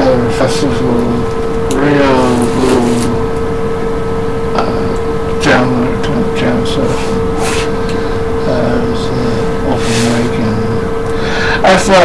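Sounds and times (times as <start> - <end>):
steady hum: 0.0 - 12.0
man's drawn-out vocal sound: 4.5 - 11.7.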